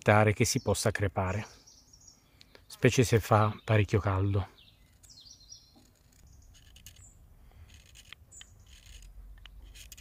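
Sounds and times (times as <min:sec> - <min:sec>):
faint high bird chirps: 0:00.5 - 0:02.9, 0:03.5 - 0:07.2
knife scraping wood: 0:04.8 - 0:10.0.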